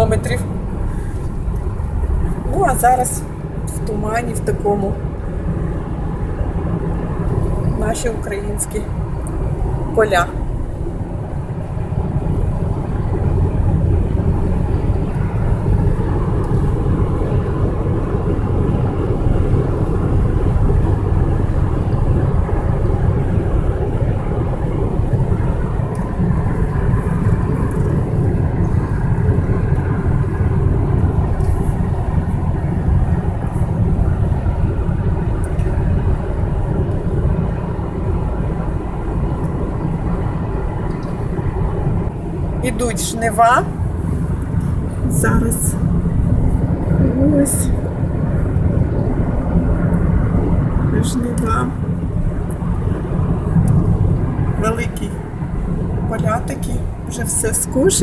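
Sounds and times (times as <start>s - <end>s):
car road noise from cabin: 0.0s - 58.0s.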